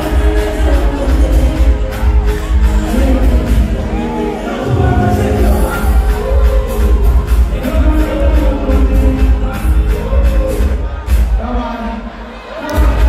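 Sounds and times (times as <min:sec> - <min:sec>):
dance music with heavy bass: 0:00.0 - 0:13.0
person singing: 0:00.0 - 0:13.0.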